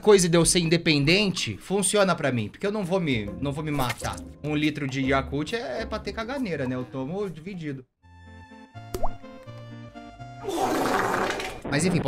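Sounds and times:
soft background music: 0:00.0 - 0:10.4.

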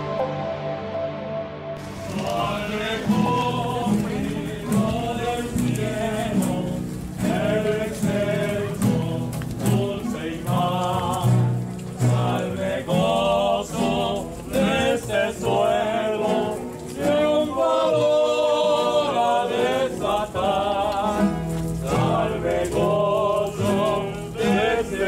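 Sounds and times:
accompanying music: 0:00.0 - 0:25.0
voices singing a hymn: 0:01.8 - 0:25.0.

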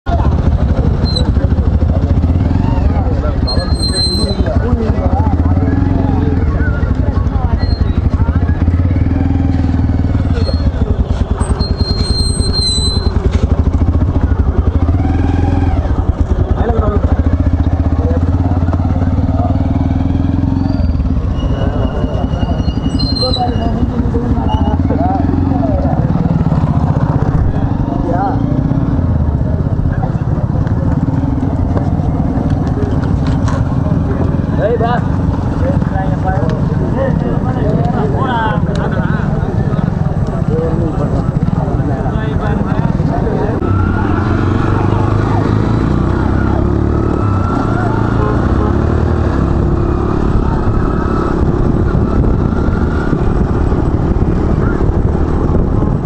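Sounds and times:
motorcycle engine running: 0:00.0 - 0:56.0
men talking: 0:00.8 - 0:08.8, 0:21.4 - 0:28.8, 0:29.5 - 0:45.8
short high-pitched whistles: 0:11.4 - 0:13.3, 0:20.6 - 0:23.8.

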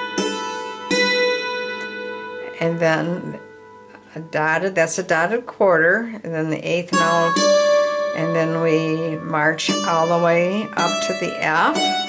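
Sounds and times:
hammered dulcimer notes ringing: 0:00.0 - 0:04.0, 0:06.8 - 0:12.0.

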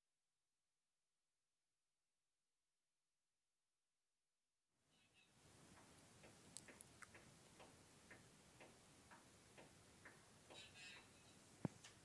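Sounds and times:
faint even ticking: 0:05.4 - 0:12.0.

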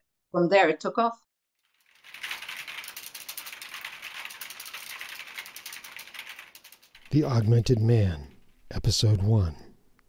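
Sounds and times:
fast typing clatter: 0:01.6 - 0:08.6.

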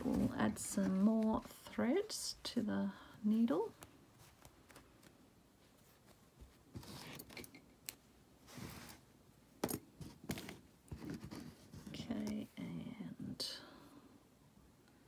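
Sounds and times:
soft rustle: 0:00.0 - 0:07.4, 0:08.4 - 0:09.2, 0:10.0 - 0:12.6.

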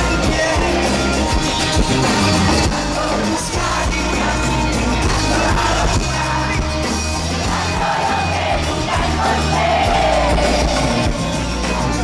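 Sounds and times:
bass notes: 0:00.0 - 0:12.0
pop band playing: 0:00.0 - 0:12.0
crowd yelling: 0:02.0 - 0:12.0.

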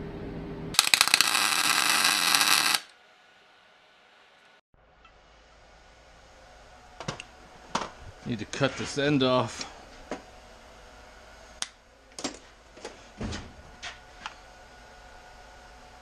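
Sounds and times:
welder arc crackling: 0:00.8 - 0:02.9.

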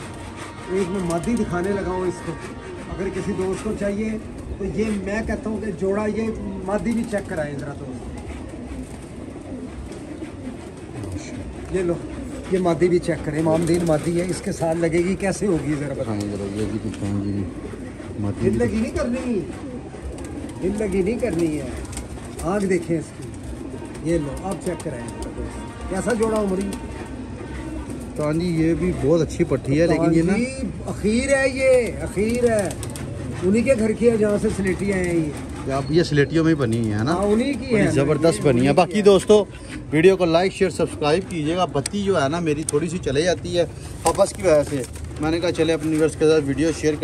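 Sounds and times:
pigeons cooing: 0:00.0 - 0:47.0
man speaking: 0:24.0 - 0:26.8, 0:33.4 - 0:47.0.

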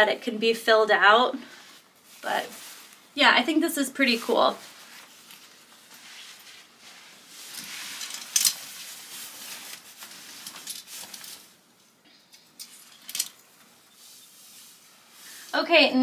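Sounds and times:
fabric rustling: 0:01.4 - 0:03.3, 0:04.0 - 0:12.0, 0:12.7 - 0:15.9.

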